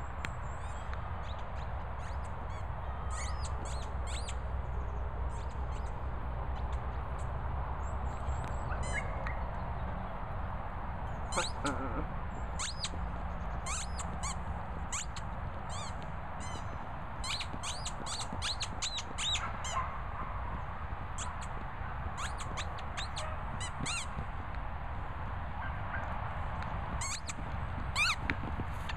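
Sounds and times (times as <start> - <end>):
squeaky dog toy squeaking: 11.3 - 12.0, 12.6 - 13.0, 13.7 - 16.6, 28.0 - 28.2.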